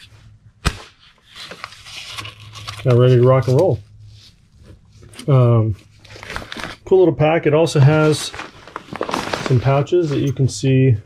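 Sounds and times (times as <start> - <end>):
rustling and scraping handling noise: 1.0 - 7.0, 7.6 - 11.0
man speaking: 5.2 - 5.8, 6.9 - 8.4, 9.5 - 11.0.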